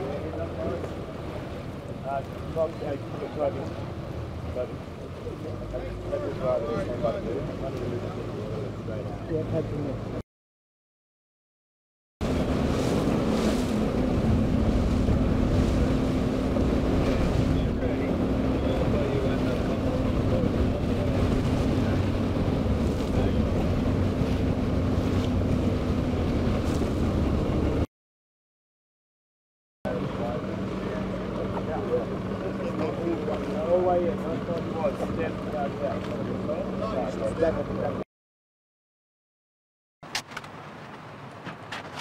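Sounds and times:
water lapping: 0:00.0 - 0:10.1, 0:12.2 - 0:27.8
boat engine droning: 0:00.0 - 0:10.2, 0:12.2 - 0:27.9, 0:29.9 - 0:38.0
wind buffeting microphone: 0:12.2 - 0:27.8.

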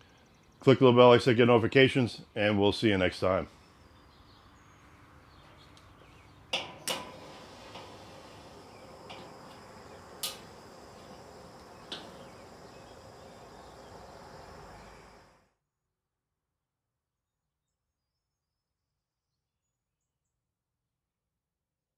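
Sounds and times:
faint steady background: 0:00.0 - 0:18.0.

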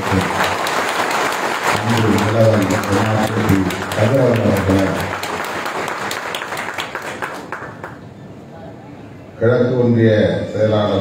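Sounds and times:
audience applause: 0:00.0 - 0:08.0.

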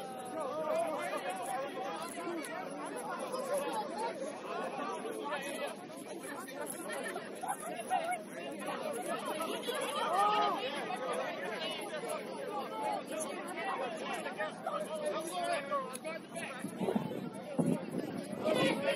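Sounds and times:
overlapping chatter: 0:00.0 - 0:18.9.

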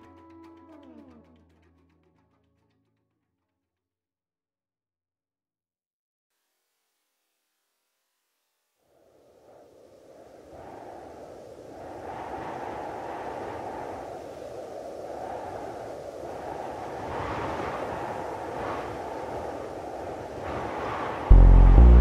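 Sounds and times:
muffled rushing noise: 0:21.2 - 0:22.0.

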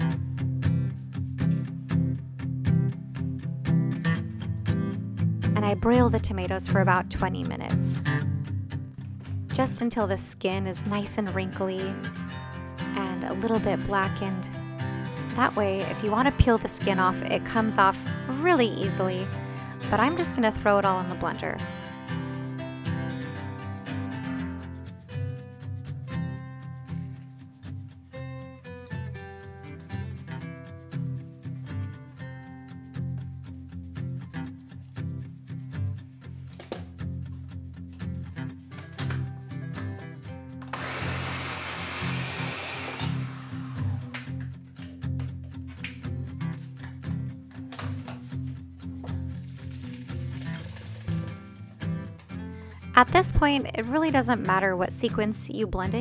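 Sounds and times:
light background music: 0:05.5 - 0:56.0.

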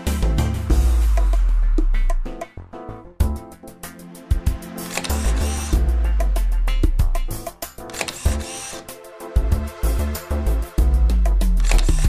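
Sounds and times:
theme music with deep bass: 0:00.0 - 0:12.0
camera shutter clicks: 0:04.8 - 0:05.8, 0:07.9 - 0:08.9, 0:11.6 - 0:12.0.

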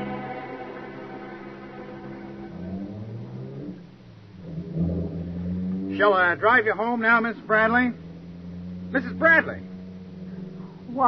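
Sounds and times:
low string music: 0:00.0 - 0:03.9
car engine rumble: 0:00.0 - 0:11.0.

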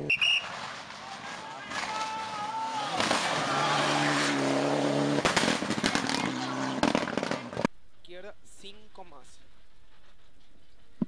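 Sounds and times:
sharp cracks: 0:00.2 - 0:04.4, 0:05.1 - 0:07.7
rally car engine at high revs: 0:03.0 - 0:07.7.

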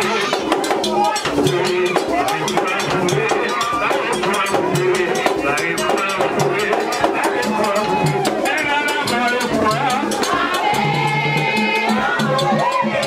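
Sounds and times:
drums beating fast rhythm: 0:00.0 - 0:13.0
voices singing: 0:00.0 - 0:13.0.

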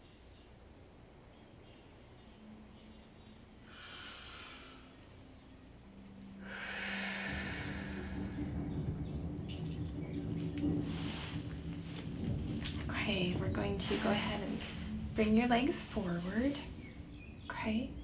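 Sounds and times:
low hum with held tones: 0:00.0 - 0:18.0
woman breathing deeply: 0:03.6 - 0:05.2, 0:06.3 - 0:09.0.

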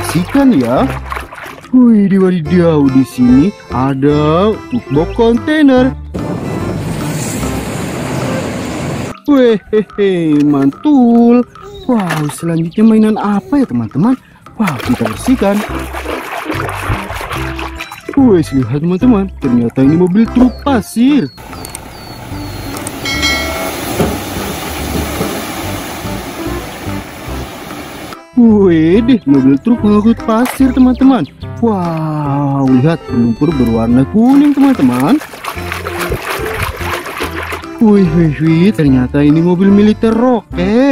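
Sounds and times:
truck passing: 0:06.1 - 0:09.1, 0:21.4 - 0:28.2
brief high tone: 0:23.0 - 0:24.0
knock: 0:23.9 - 0:24.3
soil and rocks sliding: 0:34.2 - 0:37.8.

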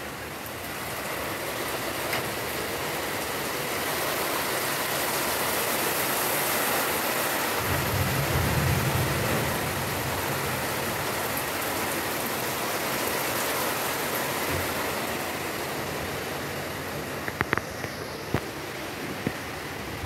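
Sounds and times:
heavy rain pouring: 0:00.0 - 0:20.0.

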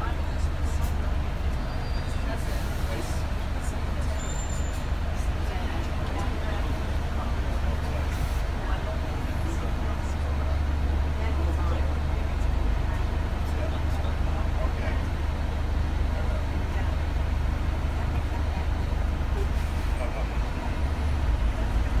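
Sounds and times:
bus engine rumble: 0:00.0 - 0:22.0.

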